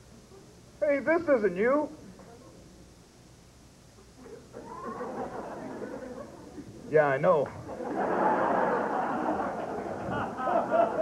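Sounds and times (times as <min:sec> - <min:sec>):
audience laughter: 0:04.5 - 0:06.7, 0:07.7 - 0:11.0.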